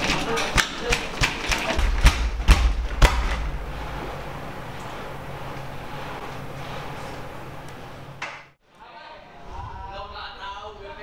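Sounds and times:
sharp thuds: 1.2 - 4.1
low rumble: 1.8 - 7.0.

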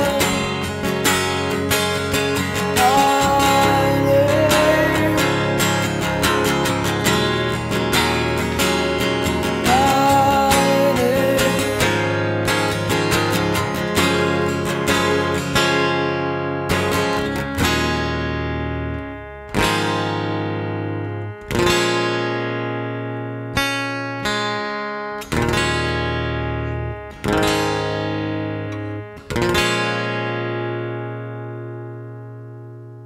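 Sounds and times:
acoustic guitar strummed chords: 0.0 - 33.0.

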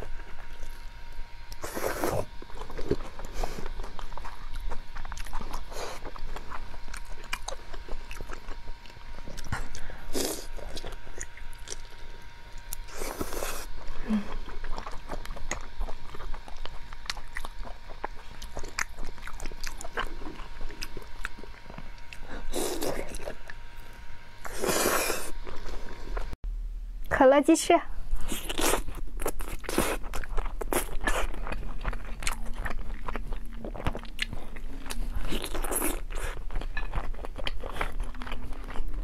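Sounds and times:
person biting and chewing: 12.6 - 23.6, 28.2 - 39.0.

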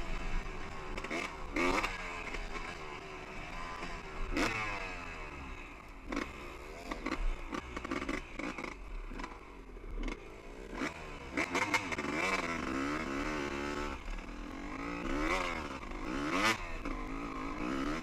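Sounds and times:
dirt bike engine revving: 0.0 - 18.0.

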